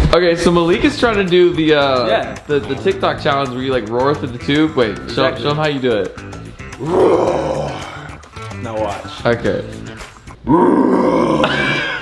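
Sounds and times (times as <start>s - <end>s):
man roaring into cardboard tube: 6.8s - 8.2s, 10.4s - 12.0s.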